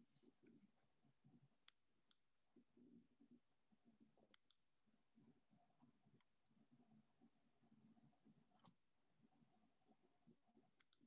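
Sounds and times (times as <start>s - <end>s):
faint clicks: 4.3s - 4.6s, 10.8s - 11.0s.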